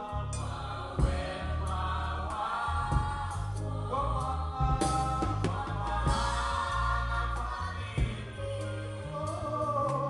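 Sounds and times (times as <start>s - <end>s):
gospel choir with band: 0.0s - 10.0s.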